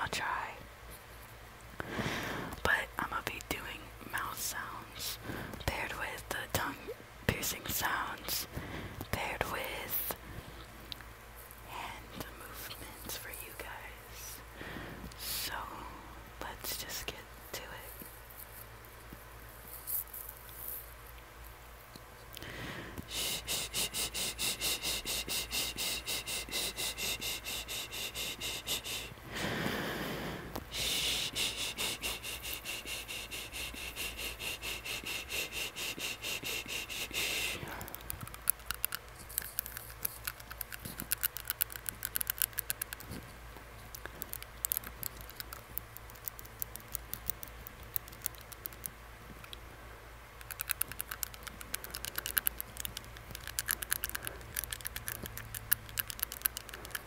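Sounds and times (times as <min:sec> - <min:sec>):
tongue ring clicking against teeth: 0:37.8 - 0:43.2, 0:43.8 - 0:49.6, 0:50.4 - 0:57.0.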